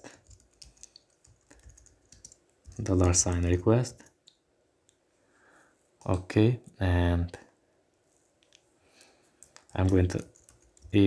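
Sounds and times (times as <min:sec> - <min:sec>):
faint keyboard typing: 0:00.0 - 0:04.3, 0:05.8 - 0:06.4, 0:08.1 - 0:11.0.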